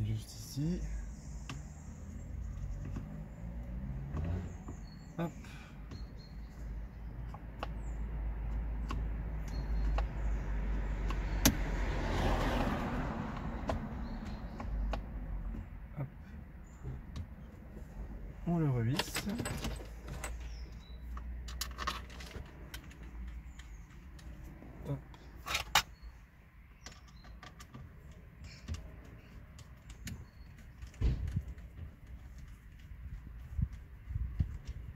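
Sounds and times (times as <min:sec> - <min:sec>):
small plastic clicks and taps: 0:13.3 - 0:15.6.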